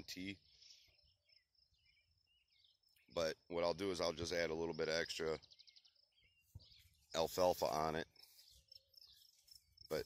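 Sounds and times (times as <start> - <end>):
man speaking: 3.1 - 5.4, 7.1 - 8.2.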